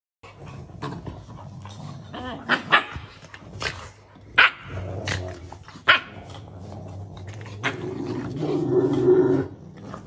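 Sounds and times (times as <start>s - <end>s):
dogs growling: 0.2s - 10.0s.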